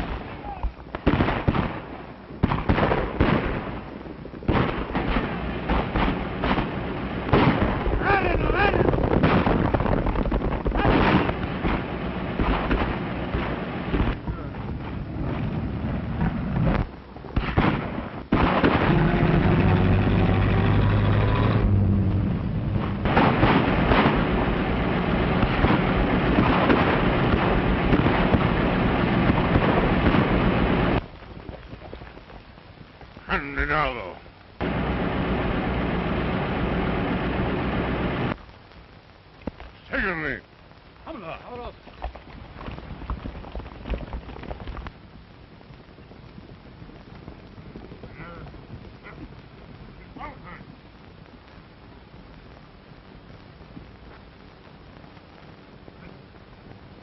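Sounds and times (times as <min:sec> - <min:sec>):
explosive bangs: 0:00.0 - 0:31.0
dense continuous din: 0:00.0 - 0:57.0
gunshots: 0:01.0 - 0:03.9, 0:04.5 - 0:14.2, 0:16.2 - 0:20.6, 0:22.8 - 0:31.0.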